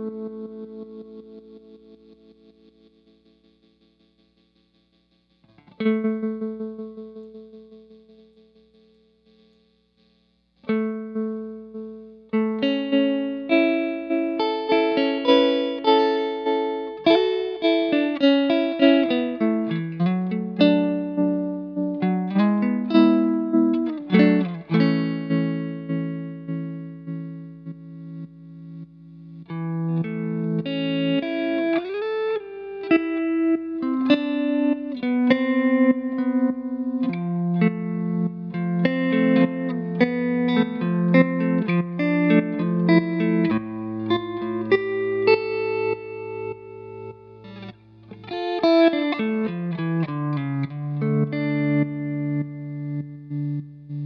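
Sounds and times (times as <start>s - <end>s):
electric guitar with tremolo: 0.0s - 9.7s, 10.6s - 54.0s.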